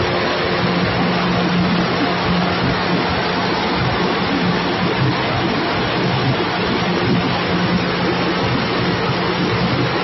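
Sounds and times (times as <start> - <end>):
processing machinery running: 0.0 - 10.0.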